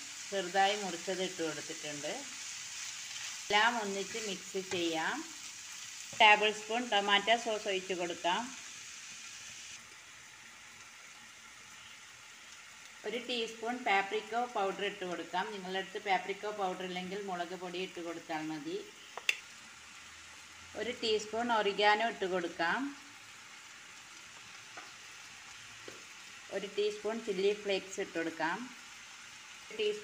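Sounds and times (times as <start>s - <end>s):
food sizzling in a pan: 0.0s - 30.0s.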